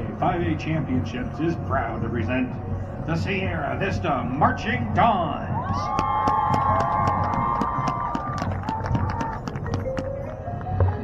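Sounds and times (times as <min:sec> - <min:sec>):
audience clapping and cheering: 0:05.6 - 0:10.7.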